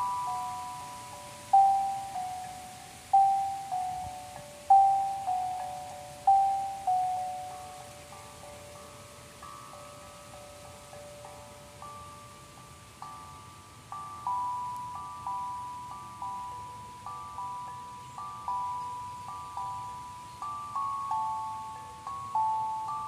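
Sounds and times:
sound bowls ringing: 0.0s - 23.0s.

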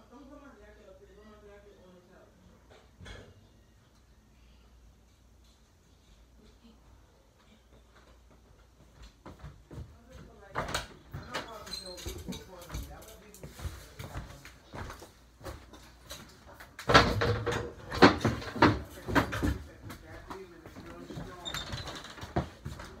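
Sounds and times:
knocks and thumps of movement: 7.8s - 23.0s.

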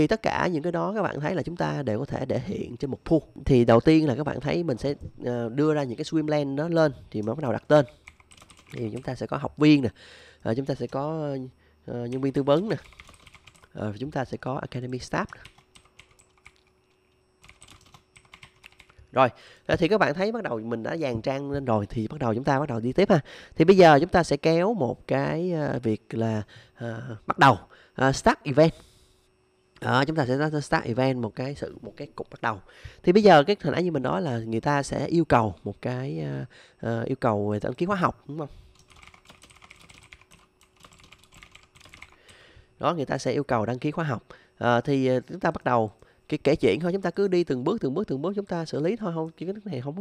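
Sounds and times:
computer keyboard keystrokes: 7.2s - 9.1s, 12.1s - 13.7s, 15.3s - 16.7s, 17.4s - 19.0s, 38.7s - 42.3s.

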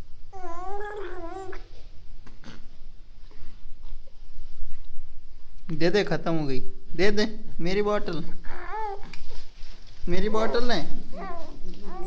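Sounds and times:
baby whining: 0.3s - 1.7s, 8.0s - 9.4s, 10.2s - 12.0s.

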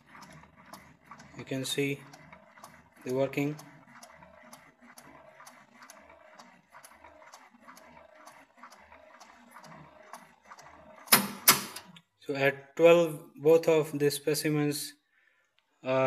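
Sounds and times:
folding tester ticking: 0.0s - 12.0s.

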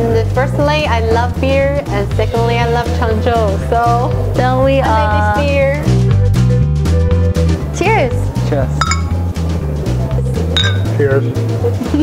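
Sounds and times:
background music with bass line: 0.0s - 12.0s
glass bottles clinking: 8.8s - 9.3s, 10.6s - 11.0s.

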